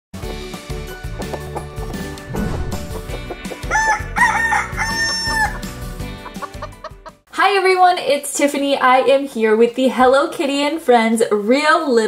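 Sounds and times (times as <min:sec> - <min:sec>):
music jingle: 0:02.3 - 0:05.0
rooster crowing: 0:03.6 - 0:05.8.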